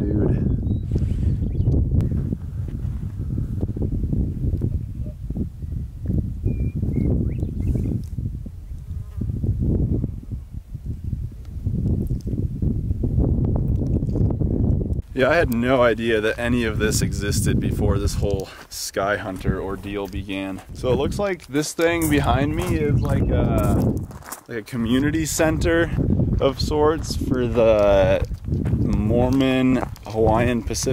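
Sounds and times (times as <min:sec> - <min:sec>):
wind buffeting microphone: 0:00.0 - 0:30.9.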